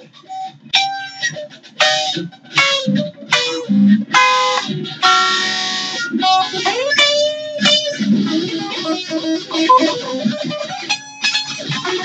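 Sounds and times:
electric guitar chords ringing: 9.7 - 10.2.

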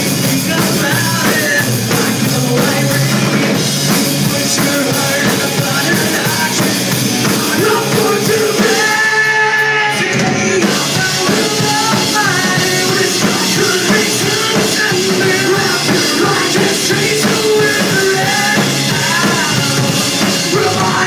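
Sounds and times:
live rock band playing: 0.0 - 21.0
man singing lead vocal: 0.0 - 21.0.

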